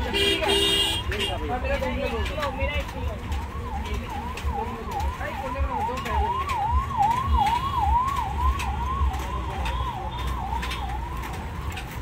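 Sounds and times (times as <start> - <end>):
crackles: 0.1 - 12.0.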